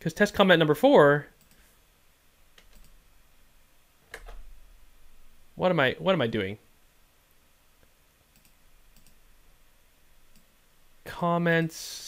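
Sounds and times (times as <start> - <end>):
faint computer mouse clicks: 1.4 - 1.7, 2.6 - 3.0, 7.8 - 9.2.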